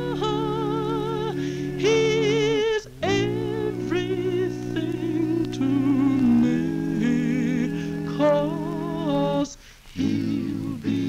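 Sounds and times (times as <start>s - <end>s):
male vocal group singing harmony: 0.0s - 11.0s.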